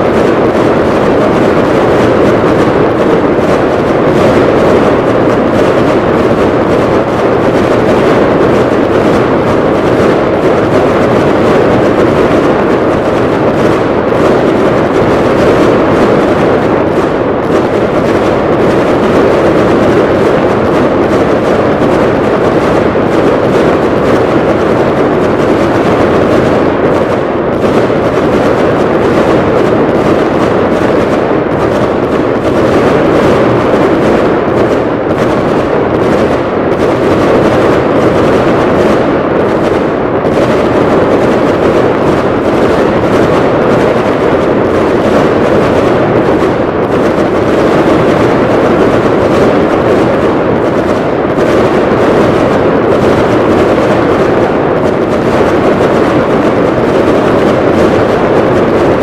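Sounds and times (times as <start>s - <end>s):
firework shells bursting: 0.0s - 59.0s.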